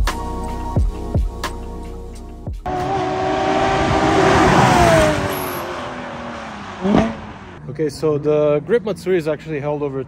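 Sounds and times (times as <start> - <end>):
background music: 0.0 - 3.0
sports car engine passing: 2.6 - 8.0.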